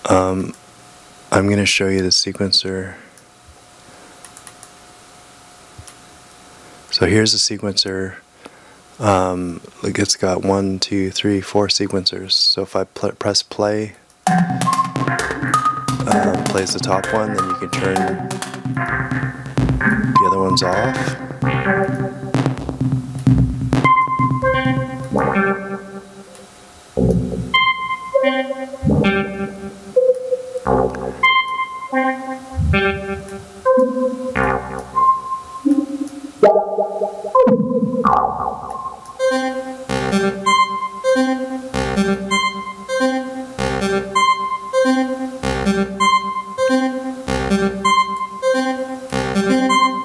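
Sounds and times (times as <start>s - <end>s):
sequenced synth notes: 14.3s - 50.0s
low synth thump: 27.0s - 27.6s, 28.8s - 29.3s, 32.6s - 33.4s
loud synth swell: 27.0s - 40.5s.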